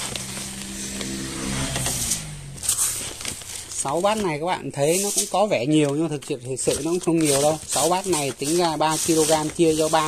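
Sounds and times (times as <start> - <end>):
engine running: 0.0 - 3.6
fertilizer scooped from plastic sack: 0.0 - 10.0.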